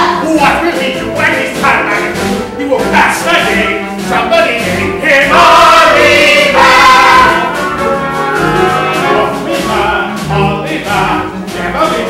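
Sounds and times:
musical accompaniment: 0:00.0 - 0:12.0
chorus of boys and man singing: 0:04.4 - 0:07.8, 0:08.6 - 0:12.0.

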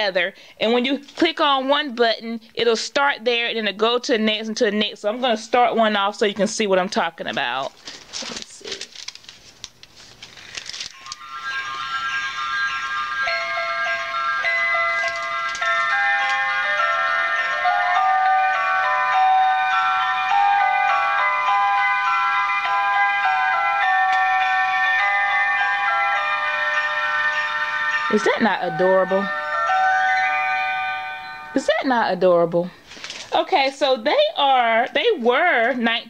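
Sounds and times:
toy handling clicks: 0:08.7 - 0:11.3, 0:15.0 - 0:16.5
electronic toy melody: 0:10.9 - 0:31.7.

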